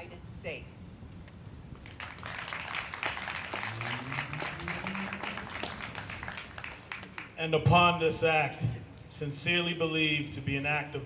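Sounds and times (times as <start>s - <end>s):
crowd applauding: 1.8s - 7.6s.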